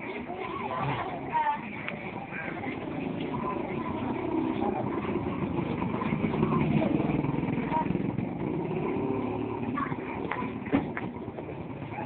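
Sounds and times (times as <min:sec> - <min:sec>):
people's voices: 0:00.0 - 0:12.0
vehicle engine running: 0:00.9 - 0:12.0.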